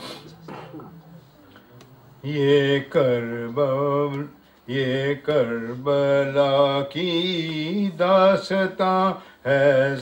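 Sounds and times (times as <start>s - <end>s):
man chanting into a microphone: 2.2s - 10.0s.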